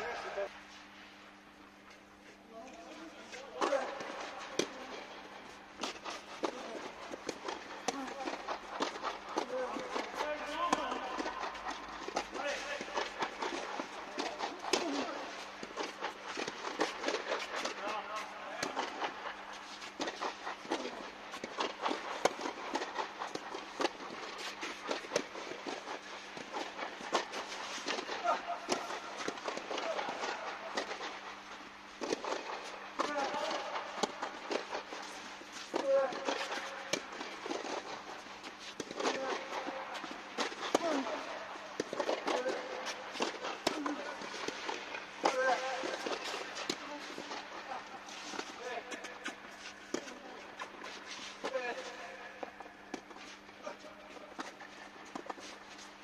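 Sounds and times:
steady low hum: 0:00.0 - 0:56.0
rackets striking tennis ball: 0:03.4 - 0:56.0.

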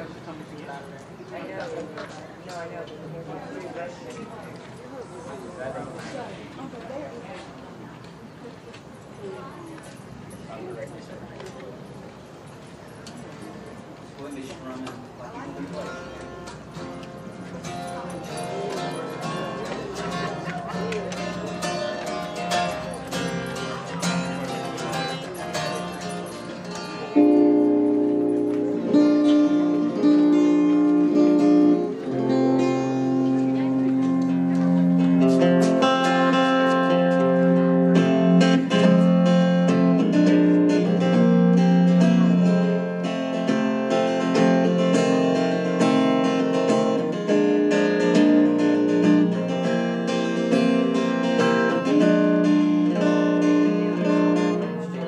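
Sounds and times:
strummed acoustic guitar: 0:15.7 - 0:55.0
held notes underneath: 0:15.8 - 0:55.0.

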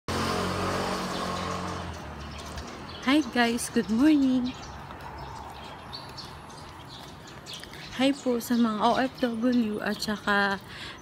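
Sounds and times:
vehicle passing by: 0:00.1 - 0:07.8.

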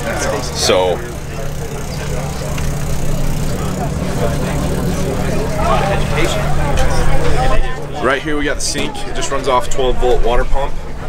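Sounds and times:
distant voices chattering: 0:00.0 - 0:11.0
low mechanical hum: 0:00.0 - 0:11.0.

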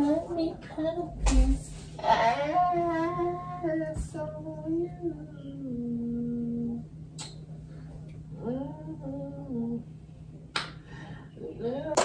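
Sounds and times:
person singing wordlessly: 0:00.0 - 0:06.8.

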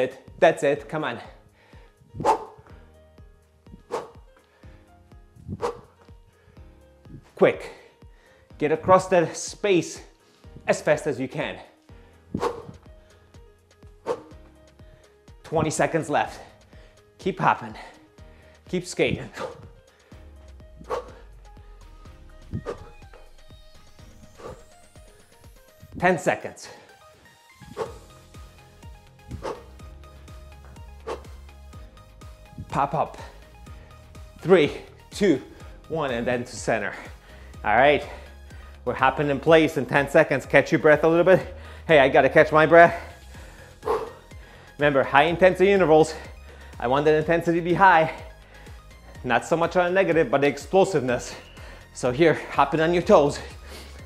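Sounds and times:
background music: 0:00.0 - 0:54.0.

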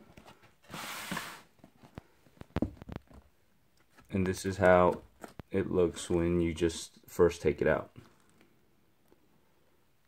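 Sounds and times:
tissue paper rustling: 0:00.6 - 0:01.8.

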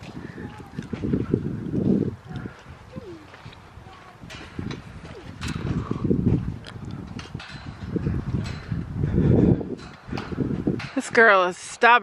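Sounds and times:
footsteps on muddy grass: 0:00.0 - 0:06.8.

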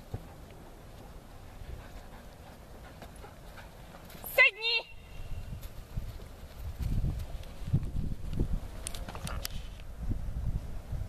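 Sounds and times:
person giving high-pitched call: 0:04.3 - 0:05.4
footsteps on grass: 0:05.1 - 0:08.4.

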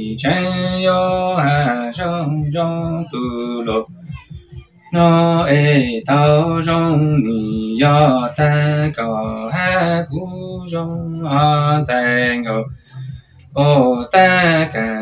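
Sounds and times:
man singing: 0:00.0 - 0:15.0
singer breathing: 0:12.7 - 0:13.6.

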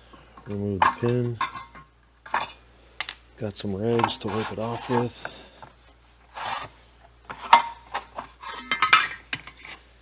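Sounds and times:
rag wiping metal sheet: 0:04.0 - 0:05.2.

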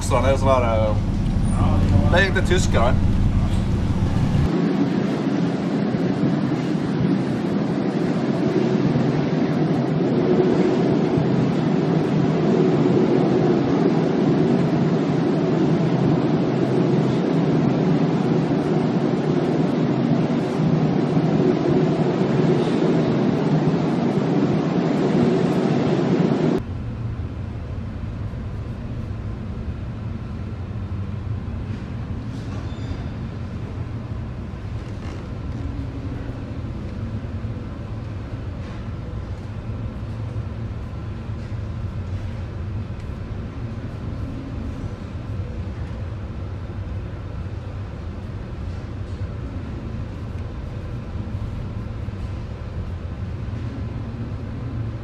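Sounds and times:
storm wind: 0:00.0 - 0:55.0.

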